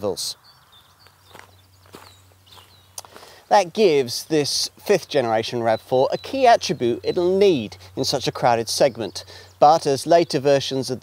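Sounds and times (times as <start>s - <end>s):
soft footsteps on grass: 0.7s - 5.2s.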